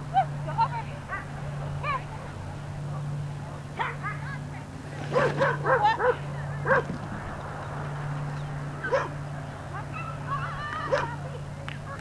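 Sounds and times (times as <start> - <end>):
steady low hum: 0.0 - 12.0
dog yipping: 5.1 - 6.9, 8.8 - 9.2, 10.8 - 11.2.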